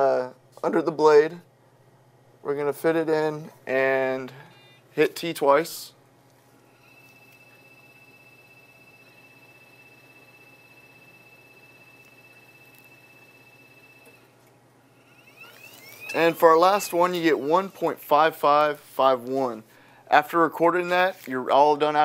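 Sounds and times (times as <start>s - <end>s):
high whine of machine drive: 4.0s - 20.0s.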